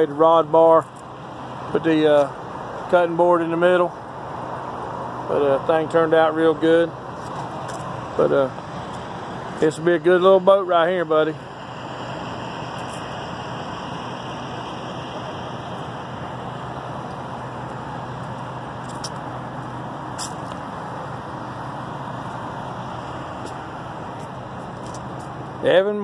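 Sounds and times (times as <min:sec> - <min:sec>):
low constant drone: 0:00.0 - 0:26.0
road traffic and idling vehicles: 0:00.0 - 0:26.0.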